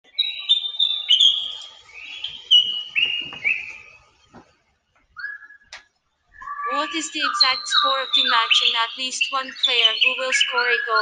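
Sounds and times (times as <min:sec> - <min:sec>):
high whistled chirps: 0:00.1 - 0:04.2, 0:05.2 - 0:11.0.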